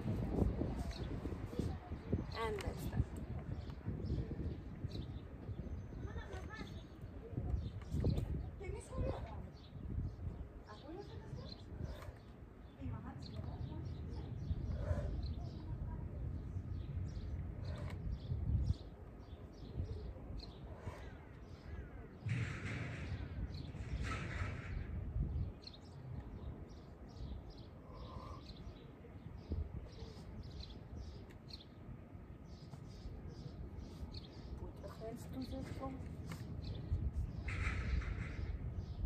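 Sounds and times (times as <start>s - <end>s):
wind rumble on microphone: 0.0s - 39.0s
small birds chirping: 0.3s - 39.0s
harsh bird calls: 16.8s - 31.8s, 36.6s - 39.0s.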